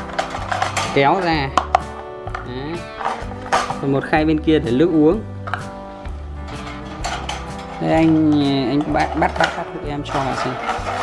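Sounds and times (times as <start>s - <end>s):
wire birdcage clinking and rattling: 0.0s - 1.3s, 6.5s - 11.0s.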